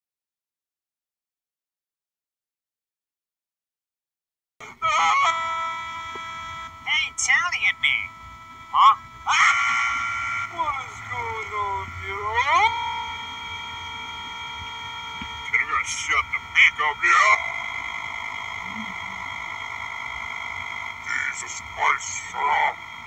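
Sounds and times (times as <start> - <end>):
boy screaming and wailing: 9.3 - 10.2.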